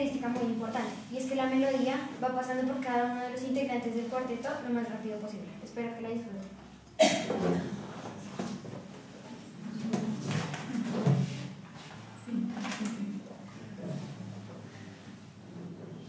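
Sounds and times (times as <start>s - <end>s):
soft knocks and rustles: 7.3s - 12.1s.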